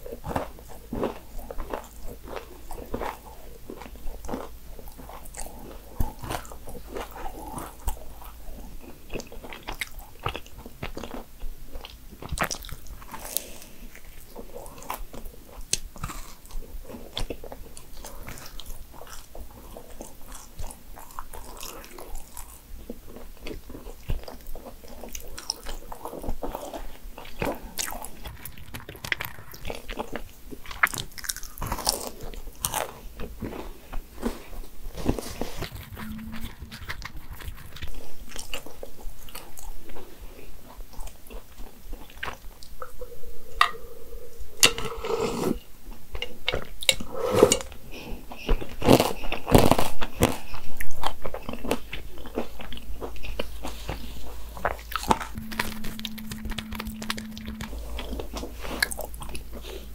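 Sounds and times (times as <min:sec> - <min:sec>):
person chewing: 0:00.0 - 0:59.9.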